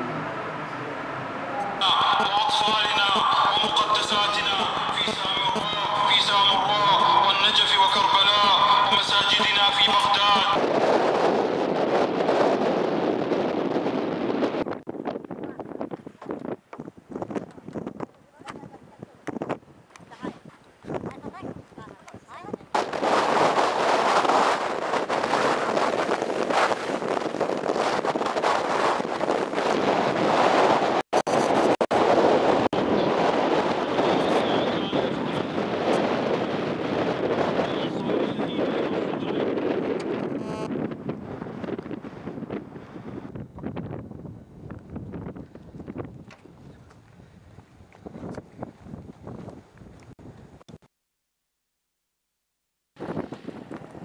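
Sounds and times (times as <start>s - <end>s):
rocket launch rushing blast: 22.8s - 32.6s.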